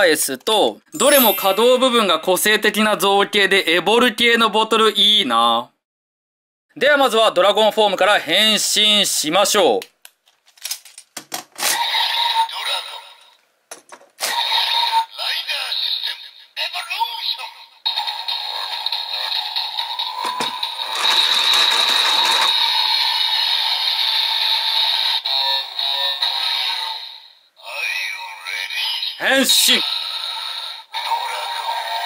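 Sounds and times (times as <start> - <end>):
recorded electronic voice: 0.0 - 5.8, 27.6 - 32.0
toy belt clicks: 20.2 - 22.6.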